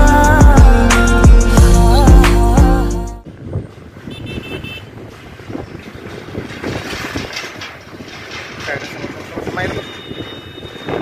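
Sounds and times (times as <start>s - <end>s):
wind on microphone: 3.2s - 11.0s
steel grated deck rattling: 5.7s - 11.0s.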